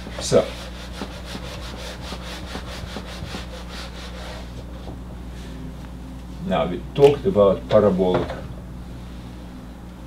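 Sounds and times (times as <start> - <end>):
eraser rubbing on whiteboard: 0.0 - 4.6.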